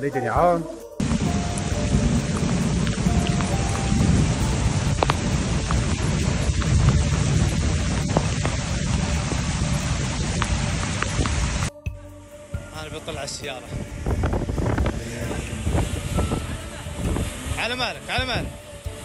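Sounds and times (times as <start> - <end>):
heavy rain: 1.0 - 11.7, 13.9 - 19.0
rushing floodwater: 1.0 - 11.7, 14.9 - 19.0.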